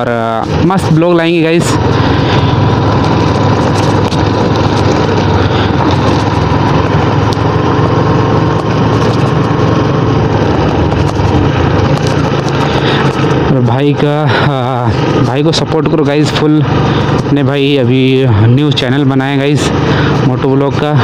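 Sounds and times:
motorcycle engine running: 0.0 - 21.0
tyres on gravel road: 0.0 - 21.0
wind rushing over microphone: 0.0 - 21.0.

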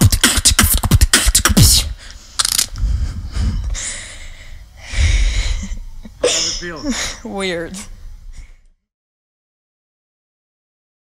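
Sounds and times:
long hissing breath: 1.9 - 7.3
woman's laughing breaths: 2.8 - 7.3.

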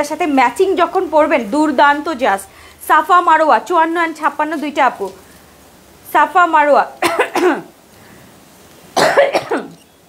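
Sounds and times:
woman coughing: 7.0 - 7.7, 9.0 - 9.8.

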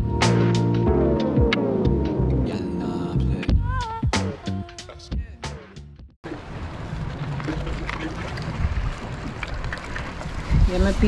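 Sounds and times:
sea waves washing: 6.2 - 11.0
wind buffeting microphone: 6.3 - 11.0.

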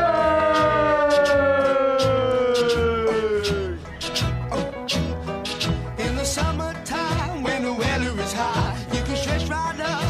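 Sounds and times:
long cheering shout: 0.0 - 3.8
background music with steady beat: 0.0 - 10.0.

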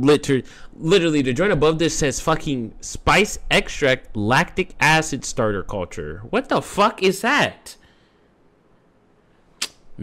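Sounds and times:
short sharp click: 9.6 - 9.8.

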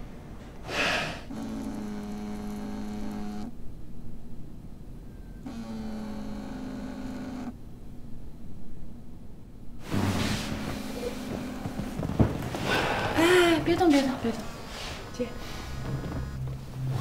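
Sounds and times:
phone buzzing on stone table: 1.3 - 3.5, 5.4 - 7.6.

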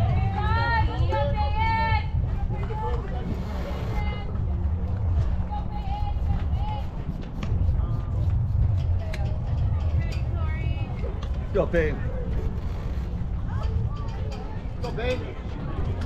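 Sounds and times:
spectators and players talking: 0.0 - 16.0
wind rumble on microphone: 0.0 - 16.0.

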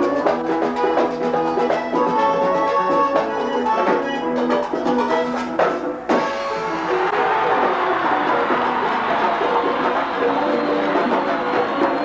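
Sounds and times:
button accordion melody: 0.0 - 12.0.

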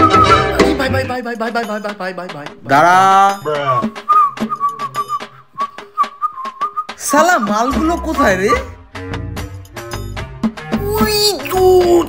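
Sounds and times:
person whistling: 0.0 - 0.9, 3.4 - 7.0.

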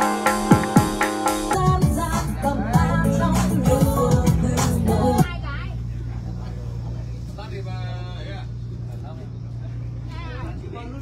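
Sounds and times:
boat engine droning: 1.7 - 11.0
faint voices: 1.7 - 11.0.

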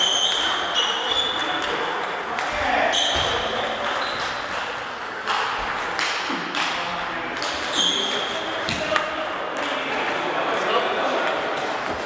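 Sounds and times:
table tennis balls clicking: 0.0 - 12.0.

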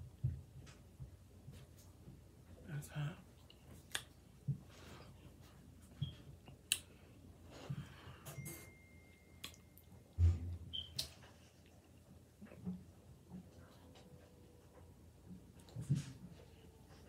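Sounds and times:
chewing food: 3.3 - 4.6
low thump: 10.2 - 10.7.

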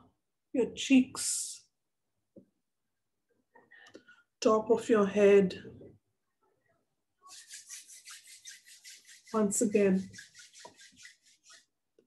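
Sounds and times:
hands brushing hair and clothing: 7.3 - 11.8.

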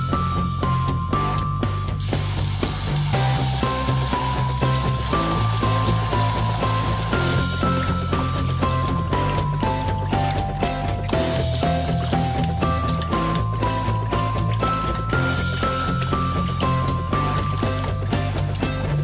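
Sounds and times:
background music: 0.0 - 19.0
tap water running: 0.0 - 19.0
hands swirling rice in water: 2.0 - 19.0.

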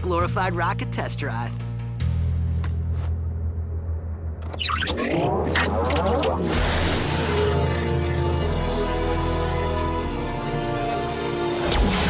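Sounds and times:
steady low drone: 1.6 - 12.0
warbling electronic sci-fi effect: 4.4 - 12.0.

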